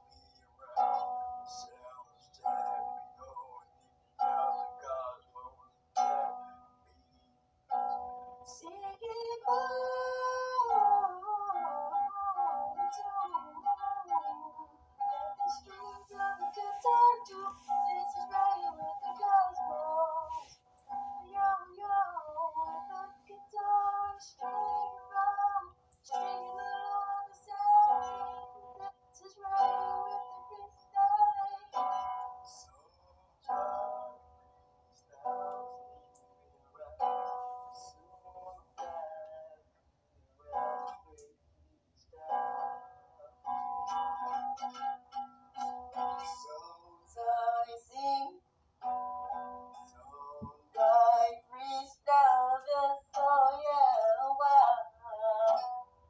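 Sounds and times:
man singing: 0.6 - 3.6, 15.4 - 20.5, 36.8 - 39.7, 45.9 - 48.4, 49.3 - 55.9.

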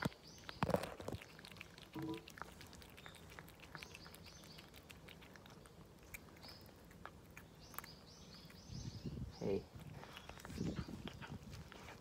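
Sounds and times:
cat chewing and smacking: 0.0 - 9.0, 9.6 - 12.0.

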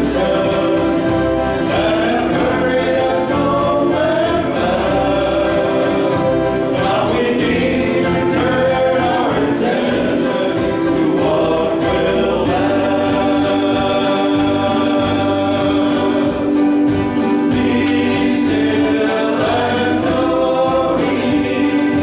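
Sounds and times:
acoustic guitar: 0.0 - 22.0
keyboard: 0.0 - 22.0
men singing in harmony: 0.0 - 22.0.

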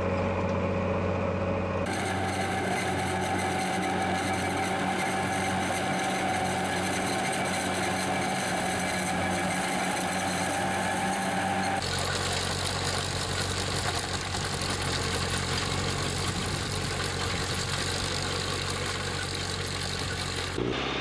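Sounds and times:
engine drone: 0.0 - 21.0
harvester engine with whine: 0.0 - 21.0.

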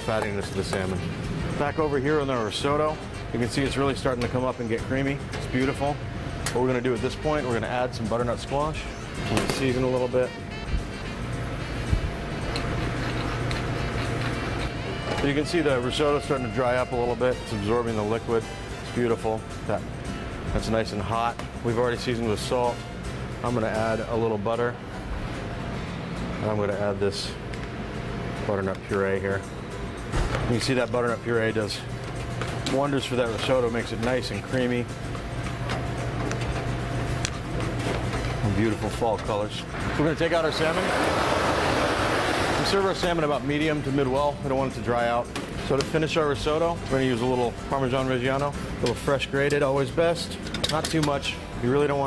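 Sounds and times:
low kitchen hum: 0.0 - 52.0.

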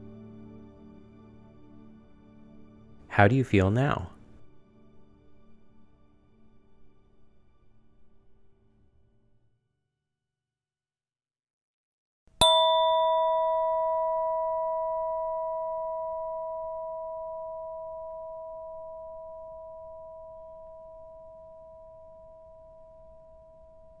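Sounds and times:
meditation chime ringing: 12.4 - 24.0.

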